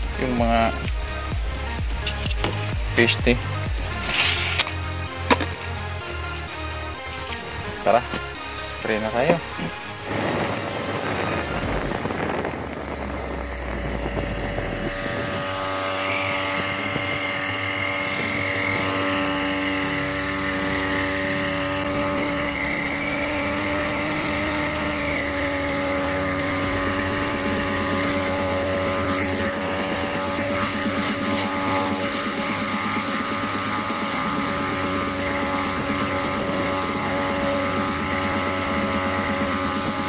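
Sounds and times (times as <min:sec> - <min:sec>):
small engine running: 0:00.0 - 0:40.0.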